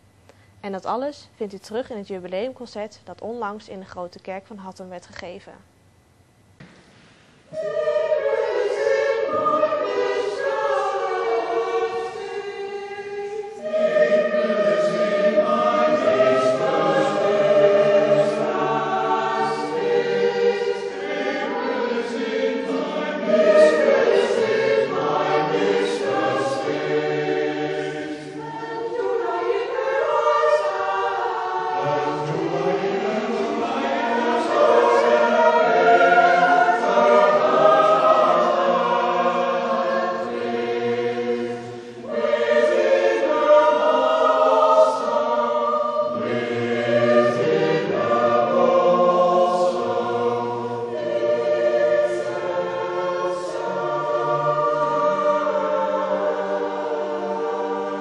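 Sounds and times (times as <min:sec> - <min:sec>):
mixed choir singing: 0:07.4 - 0:58.0.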